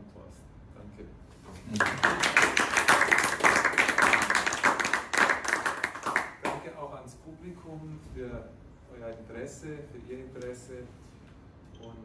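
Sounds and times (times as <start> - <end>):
audience applause: 1.8 - 6.6.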